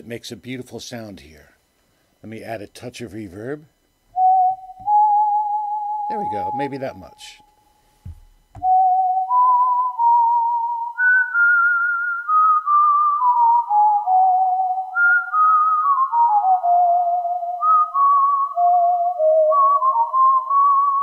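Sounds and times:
synthesizer slow melody: 0:04.5 - 0:07.8.

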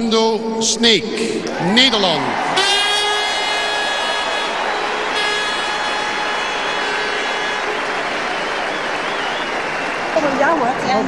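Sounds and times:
stadium crowd applauding and cheering: 0:01.5 - 0:11.0
long horn toots: 0:02.4 - 0:10.2.

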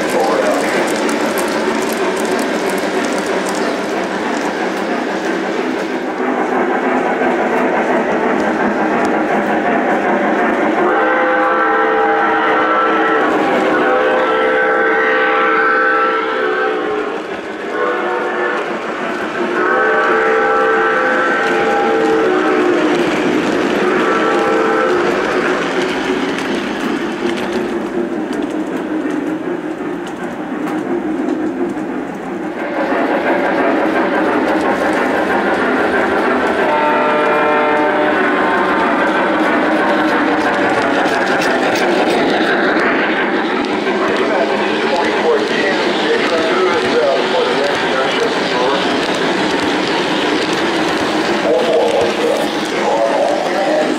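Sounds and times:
model train running on track: 0:00.0 - 0:53.9
multi-tone steam whistle blasts: 0:10.8 - 0:25.6, 0:36.5 - 0:39.1.

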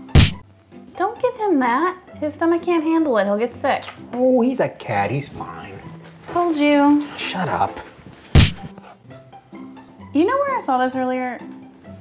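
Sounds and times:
soft background music: 0:00.0 - 0:12.0
heavy thud: 0:00.1 - 0:00.4, 0:08.4 - 0:08.7.

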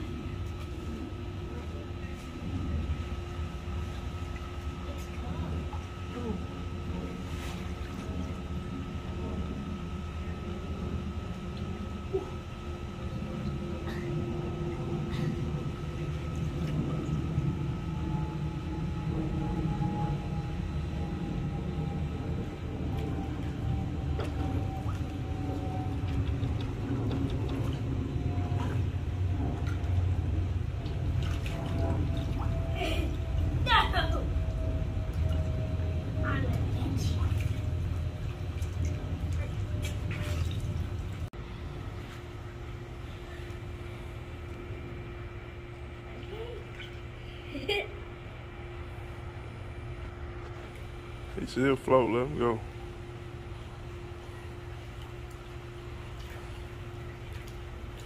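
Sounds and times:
low rumble: 0:00.0 - 0:50.3.

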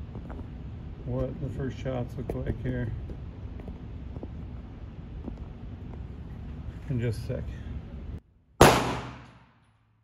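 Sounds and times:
pistol shot echoing indoors: 0:08.6 - 0:09.6.

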